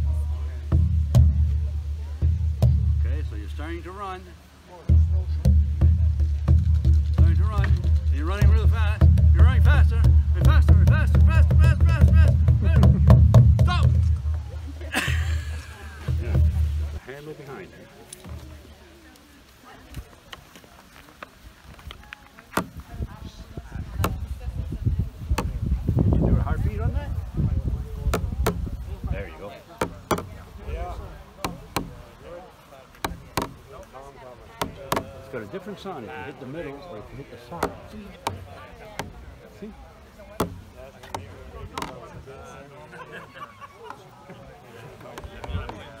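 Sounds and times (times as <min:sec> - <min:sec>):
hand drum beaten rapidly: 0:00.1 - 0:03.1, 0:04.9 - 0:14.4, 0:33.0 - 0:33.7, 0:40.4 - 0:41.9.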